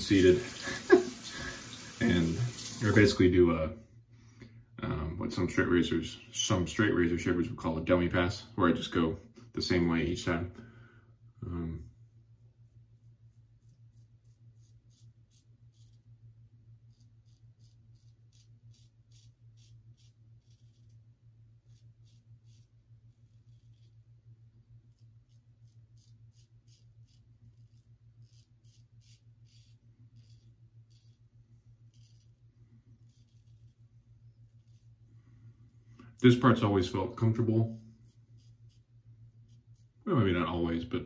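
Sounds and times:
steady low hum: 0.0s - 41.0s
razor scratching stubble: 13.0s - 35.1s, 36.3s - 40.1s.

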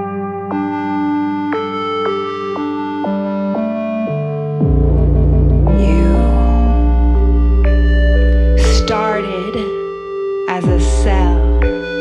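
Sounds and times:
synthesizer organ-like chords: 0.0s - 12.0s
deep bass note: 4.6s - 9.7s.

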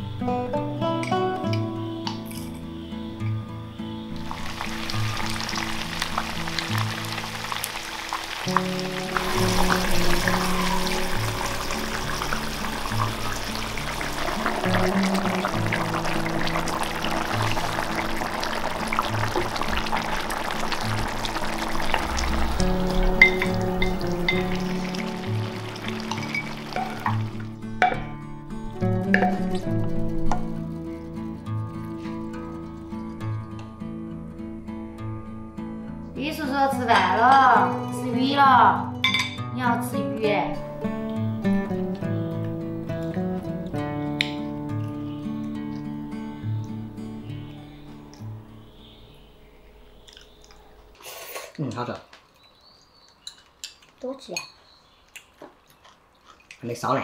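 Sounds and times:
broth boiling and bubbling: 4.2s - 30.6s.

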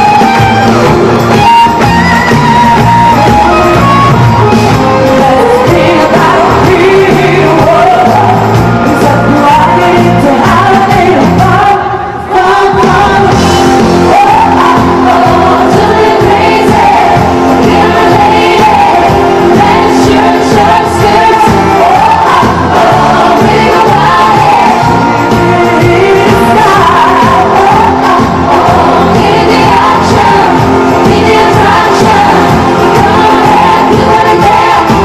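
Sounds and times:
live band playing pop song: 0.0s - 35.0s
woman singing lead vocals: 0.0s - 35.0s.

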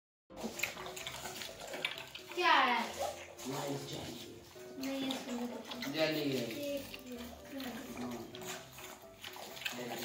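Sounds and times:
puppies lapping and smacking: 0.3s - 10.0s.

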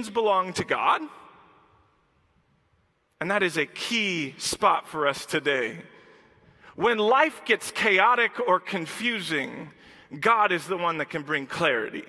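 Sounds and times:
man speaking: 0.0s - 1.4s, 3.1s - 6.0s, 6.7s - 12.0s.

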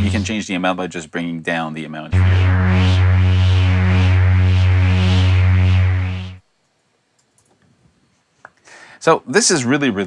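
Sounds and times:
synth low pulsing note: 2.2s - 6.4s.

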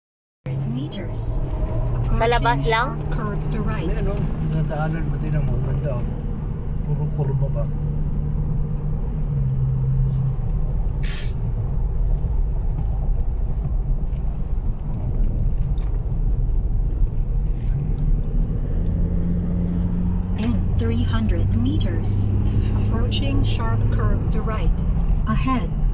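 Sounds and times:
car road noise: 0.5s - 25.9s
short hiss: 11.0s - 11.4s.

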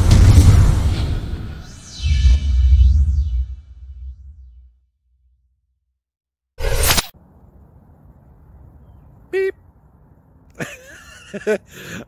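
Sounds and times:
swoosh sound effect: 0.0s - 4.8s.

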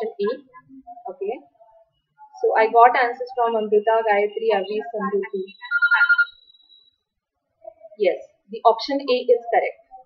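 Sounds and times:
electronic tone: 4.6s - 7.1s.

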